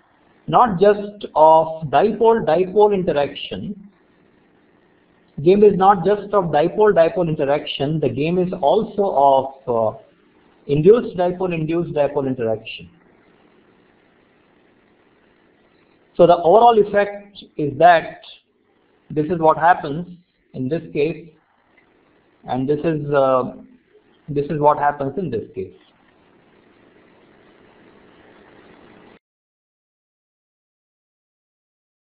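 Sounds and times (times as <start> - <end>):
recording hiss: 0.0 - 29.2.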